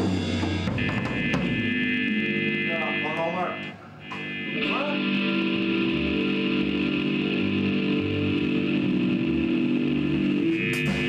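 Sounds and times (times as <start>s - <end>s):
electric bass notes: 0.0s - 11.0s
electric guitar droning chord: 4.1s - 11.0s.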